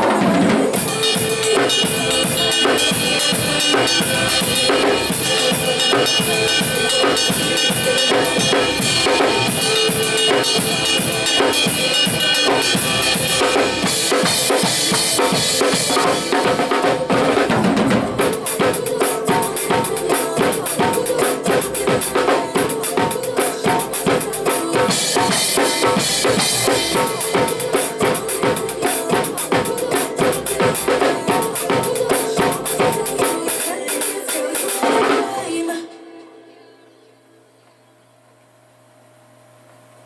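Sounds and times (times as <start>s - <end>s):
drum kit groove: 0.0s - 35.7s
soca backing track: 0.0s - 36.0s.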